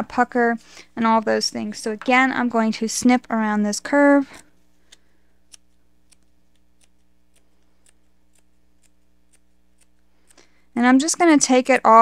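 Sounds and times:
scissors snipping canvas: 4.9 - 10.4.

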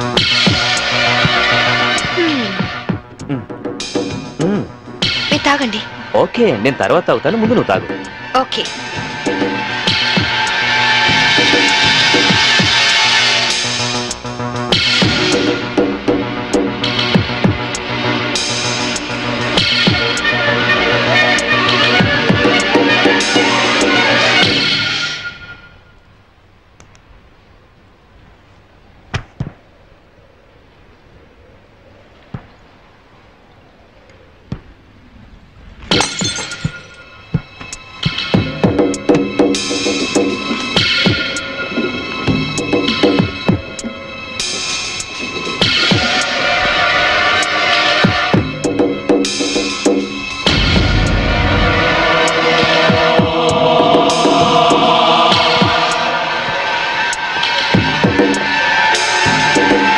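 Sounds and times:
sustained droning chord: 4.8 - 17.0, 46.2 - 59.9
sharp soundtrack hits: 50.1 - 58.2
low throbbing heartbeat pulse: 50.3 - 56.0.

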